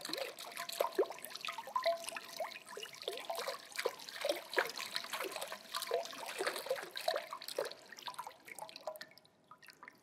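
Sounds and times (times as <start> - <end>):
water drips: 0.0 - 10.0
water pouring and splashing: 3.1 - 9.1.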